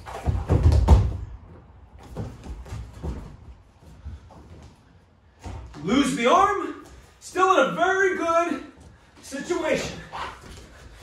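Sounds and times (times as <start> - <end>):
knocks and scuffs on mat: 0.0 - 6.2.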